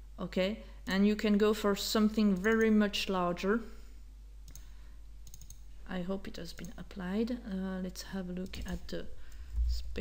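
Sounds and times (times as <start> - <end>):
computer mouse clicks: 2.3 - 2.8, 4.4 - 5.6, 6.5 - 6.8, 8.4 - 9.5.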